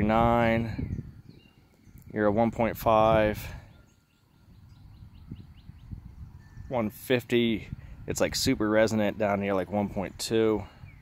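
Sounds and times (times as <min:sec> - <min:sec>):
small bird chirping: 0:00.8 - 0:02.2, 0:03.6 - 0:06.7
man speaking: 0:02.1 - 0:03.6, 0:06.7 - 0:10.7.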